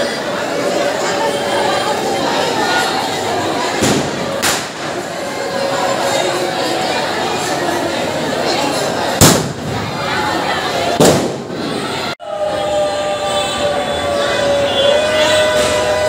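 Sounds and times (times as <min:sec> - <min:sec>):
crowd chattering: 0:00.0 - 0:16.0
firecracker bangs: 0:03.8 - 0:05.0, 0:09.2 - 0:09.9, 0:11.0 - 0:11.6.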